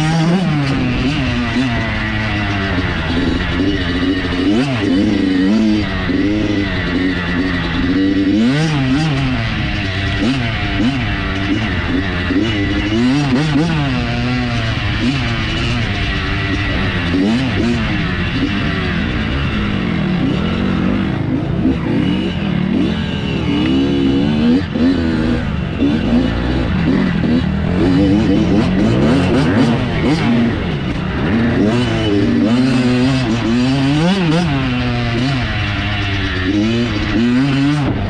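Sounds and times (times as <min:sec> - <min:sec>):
dirt bike engine revving: 0:00.0 - 0:38.0.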